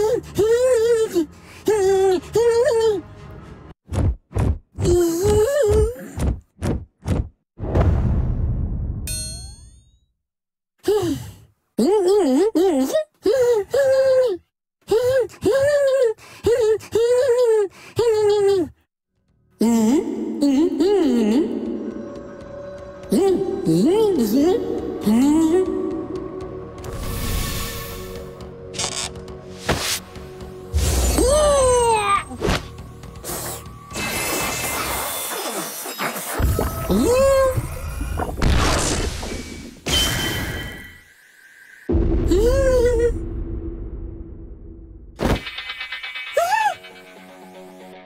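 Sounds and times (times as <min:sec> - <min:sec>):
background music: 0:19.2 - 0:34.3, 0:45.4 - 0:48.0.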